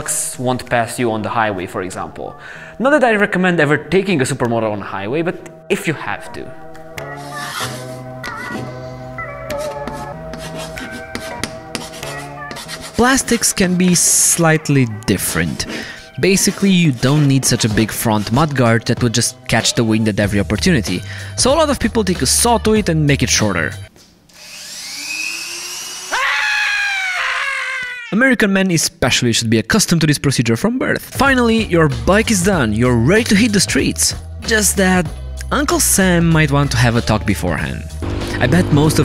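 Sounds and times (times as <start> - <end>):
background music with held notes: 0.0 - 23.9, 31.2 - 39.0
chalk scratching on a blackboard: 9.5 - 13.6, 16.3 - 17.4.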